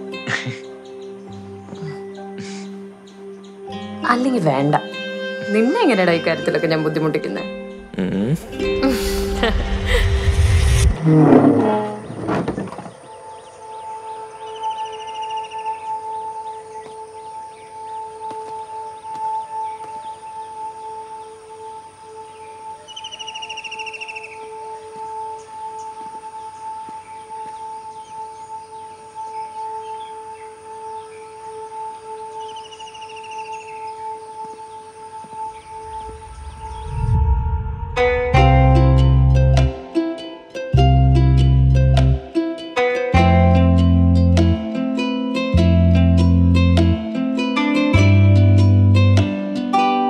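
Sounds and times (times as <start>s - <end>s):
background music drone: 0.0s - 50.0s
bird trilling: 12.8s - 16.9s, 22.8s - 24.7s.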